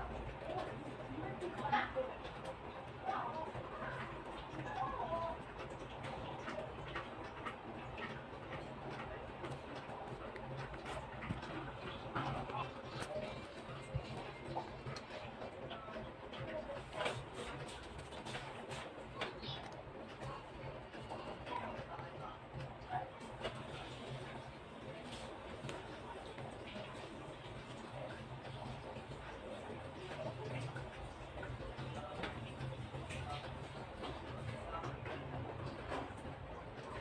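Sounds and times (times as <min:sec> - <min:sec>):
faint background voices: 0:00.0 - 0:37.0
light ticks and scratches: 0:00.4 - 0:37.0.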